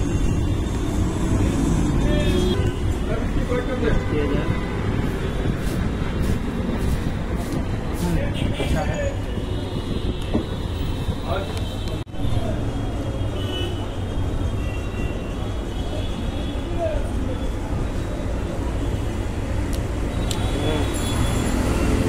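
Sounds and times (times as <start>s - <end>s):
road traffic rumble: 0.0s - 22.0s.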